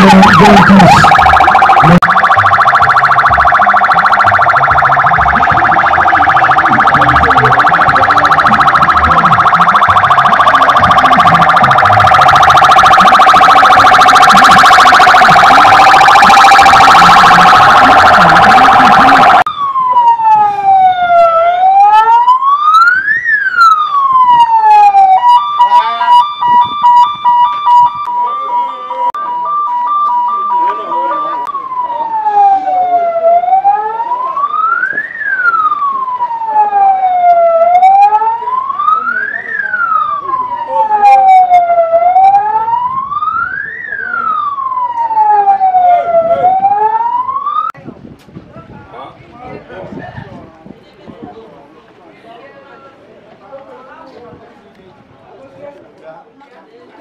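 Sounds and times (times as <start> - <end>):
loud dense blare: 0.0 - 19.5
electronic siren wailing: 0.0 - 47.8.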